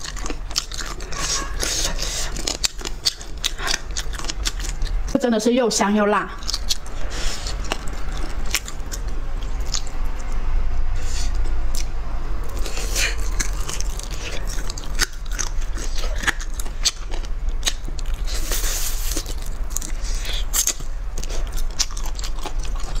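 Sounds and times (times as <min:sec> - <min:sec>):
crunchy chewing of chicken feet: 0:00.0 - 0:05.1, 0:06.4 - 0:10.4, 0:12.5 - 0:23.0
low hum: 0:00.0 - 0:23.0.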